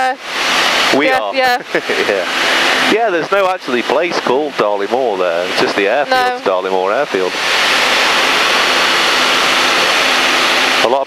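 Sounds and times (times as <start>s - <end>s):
light aircraft engine: 0.0s - 11.0s
person speaking: 1.0s - 7.4s.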